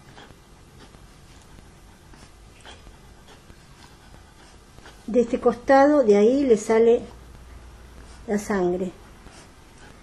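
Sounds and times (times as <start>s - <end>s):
dog snuffling: 0.0s - 5.7s.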